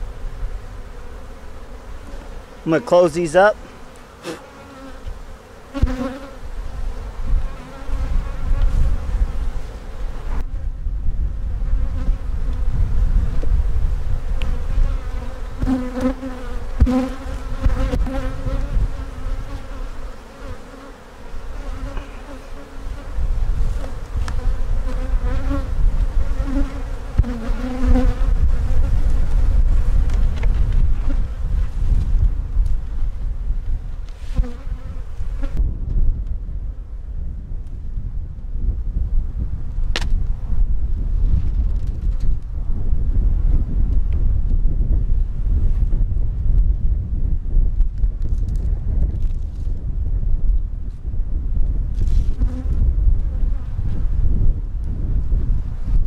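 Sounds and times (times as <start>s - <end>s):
bees buzzing: 0.0s - 10.5s, 14.2s - 29.9s.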